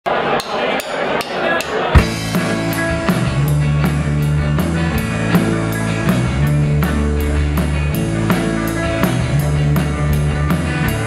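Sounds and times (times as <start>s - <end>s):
sharp drum strikes: 0.4s - 4.7s
full rock band downbeat: 1.2s - 11.0s.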